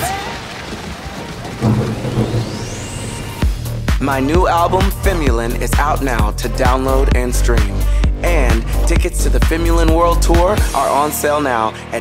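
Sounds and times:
low thunder rumbles: 1.3s - 5.1s
rising whine: 1.6s - 4.0s.

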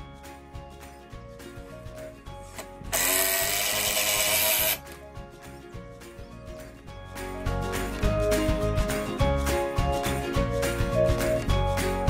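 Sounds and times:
background music: 0.0s - 12.0s
cordless drill driving screw into wood: 2.6s - 4.8s.

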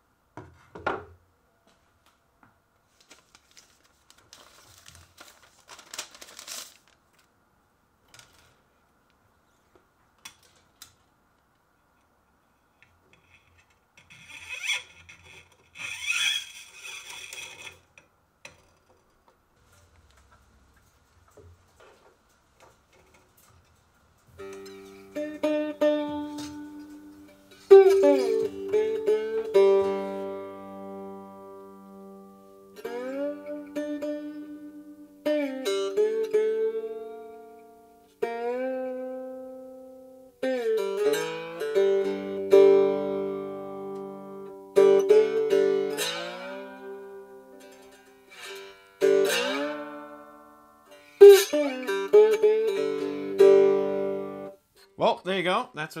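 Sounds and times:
plucked guitar notes: 24.4s - 54.6s.

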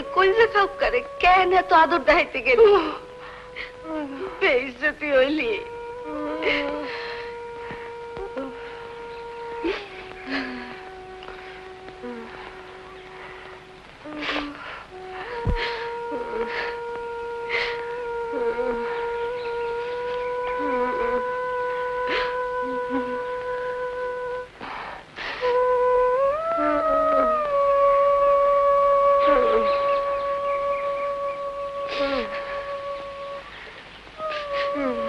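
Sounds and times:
long held instrumental note: 0.0s - 35.0s.

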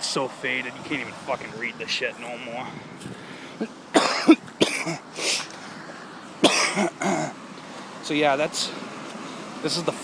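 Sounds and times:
man coughing: 3.6s - 5.5s, 6.4s - 7.4s.

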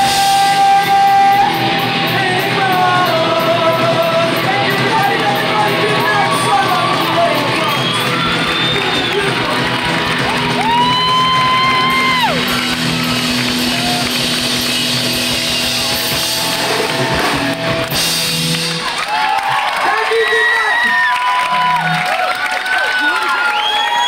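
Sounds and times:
punk rock band playing: 0.0s - 19.7s.

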